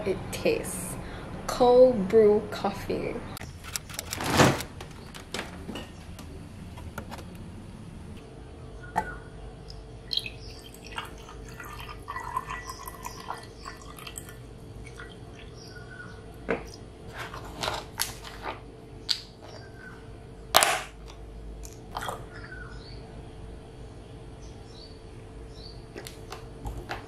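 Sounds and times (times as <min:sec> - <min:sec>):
liquid trickling: 0:10.1 - 0:15.9.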